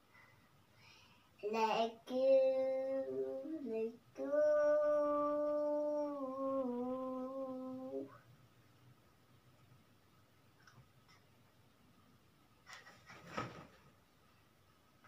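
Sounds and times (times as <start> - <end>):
girl singing long notes: 1.4 - 8.2.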